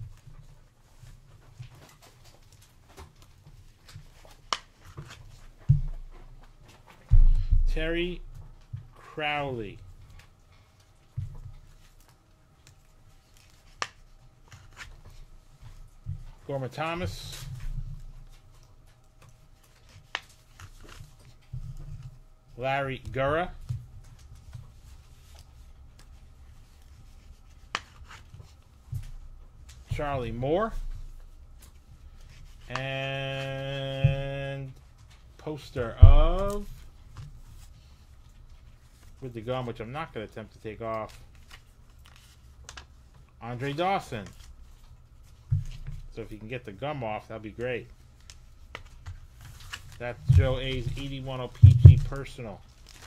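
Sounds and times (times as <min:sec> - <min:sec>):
low steady hum: 0:00.0 - 0:53.0
hands handling cards: 0:10.1 - 0:16.0, 0:17.0 - 0:22.2, 0:22.9 - 0:35.3, 0:35.9 - 0:39.3, 0:40.5 - 0:46.7, 0:47.4 - 0:53.0.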